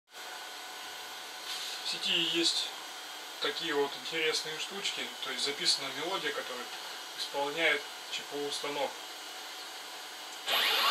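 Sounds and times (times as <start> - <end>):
small electric motor whooshing: 10.4 - 10.9.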